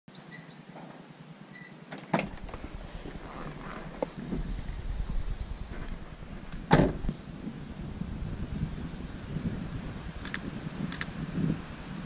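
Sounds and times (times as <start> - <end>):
high bird chirps: 0.1 - 0.6, 3.7 - 5.8.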